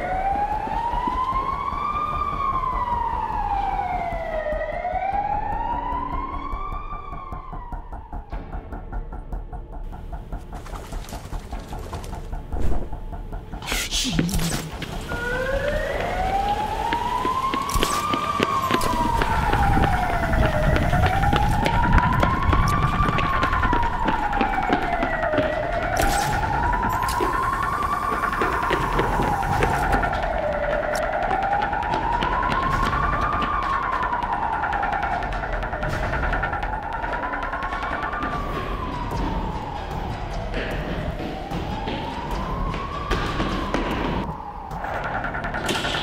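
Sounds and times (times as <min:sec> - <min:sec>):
siren wailing: 0:00.0 - 0:09.5, 0:10.1 - 0:46.0.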